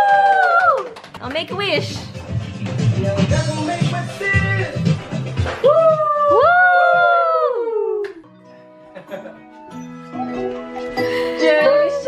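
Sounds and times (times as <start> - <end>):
people cheering drawn-out: 0.0 - 1.0, 5.6 - 8.1
background music: 0.1 - 12.0.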